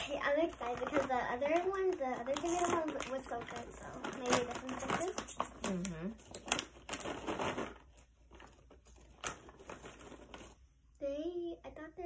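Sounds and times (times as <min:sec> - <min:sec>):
plastic snack bag crinkling: 0:00.0 - 0:10.7.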